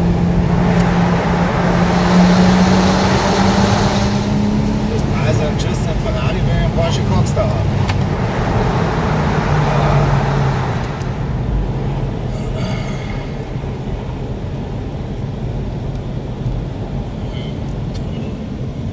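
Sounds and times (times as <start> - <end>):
car engine from inside cabin: 0.0 - 18.9.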